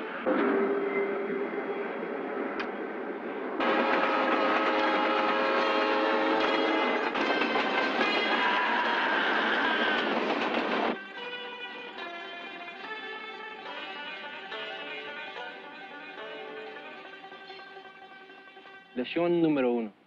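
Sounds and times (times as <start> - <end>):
freight train rumble and clatter: 0.0 - 11.0
steady horn tones: 3.6 - 8.0.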